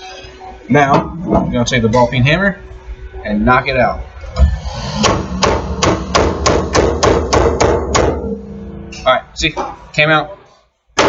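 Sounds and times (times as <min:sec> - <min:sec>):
hammer striking metal: 0:04.4 - 0:09.8.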